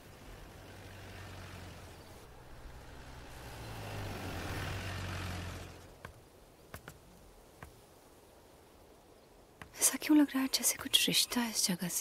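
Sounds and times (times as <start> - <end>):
car engine droning: 0.0 - 6.0.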